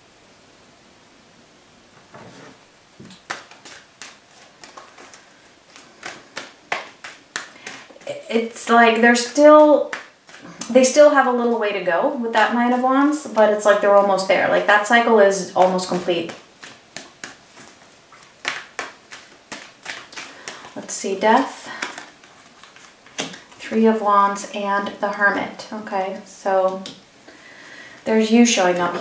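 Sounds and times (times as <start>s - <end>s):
cards clicking on wooden table: 3.0s - 8.0s, 16.3s - 20.8s, 21.4s - 23.6s.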